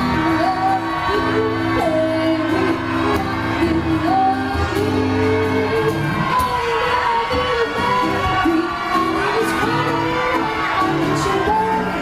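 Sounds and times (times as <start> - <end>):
acoustic guitar chords: 0.0 - 12.0
woman singing into a microphone: 0.0 - 12.0.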